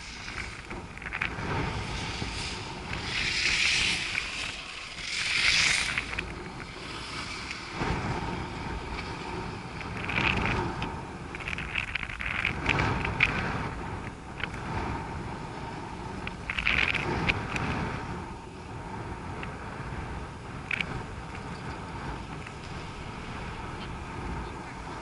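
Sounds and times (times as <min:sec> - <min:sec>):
wind on microphone: 0:00.0 - 0:25.0.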